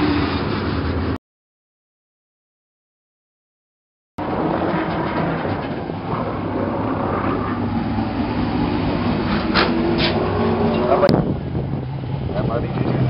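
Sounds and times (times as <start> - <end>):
car engines running at low speed: 4.2 - 13.0.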